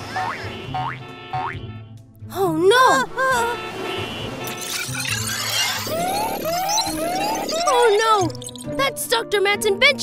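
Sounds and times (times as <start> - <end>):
soft background music: 0.1 - 4.4, 5.1 - 10.0
short rising cartoon tones: 4.5 - 8.7.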